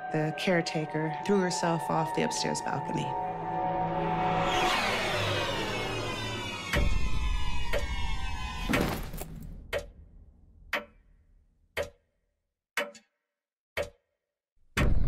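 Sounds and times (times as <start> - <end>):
falling musical swell: 2.4 - 6.8.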